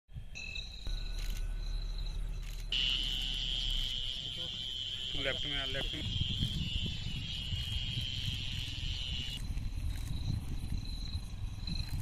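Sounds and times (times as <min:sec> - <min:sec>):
low steady hum: 0:00.2 - 0:05.1
crickets trilling: 0:00.2 - 0:12.0.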